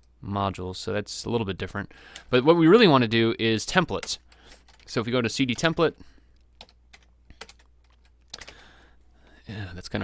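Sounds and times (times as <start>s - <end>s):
faint keyboard keystrokes: 3.9s - 4.9s, 5.5s - 8.6s.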